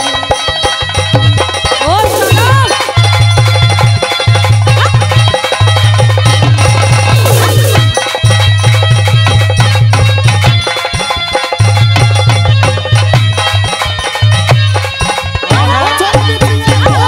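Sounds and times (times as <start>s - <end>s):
fast drum rhythm: 0.0s - 17.0s
folk music: 0.0s - 17.0s.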